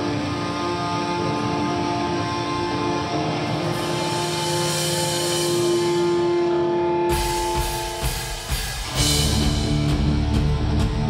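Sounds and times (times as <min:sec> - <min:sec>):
distorted electric guitars droning: 0:00.0 - 0:11.0
cymbals: 0:02.7 - 0:11.0.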